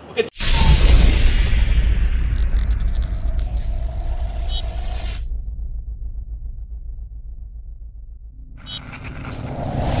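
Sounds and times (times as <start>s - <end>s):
low pulsing rumble: 0.7s - 10.0s.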